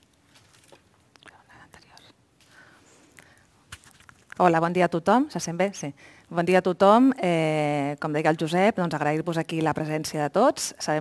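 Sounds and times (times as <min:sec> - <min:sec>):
faint clicks and rustles: 0:00.0 - 0:04.5.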